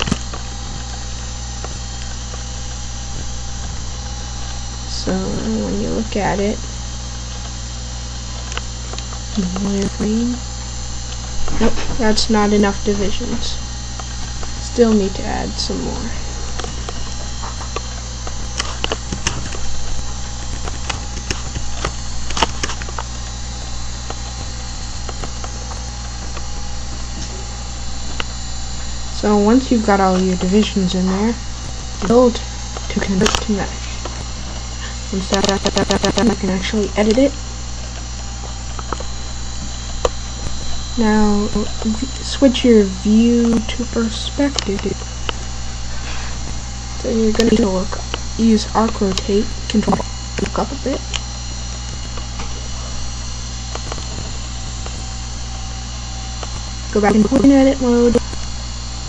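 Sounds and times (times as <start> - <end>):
electrical hum and hiss: 0.0 - 59.0
keyboard typing and mouse clicks: 35.2 - 37.2.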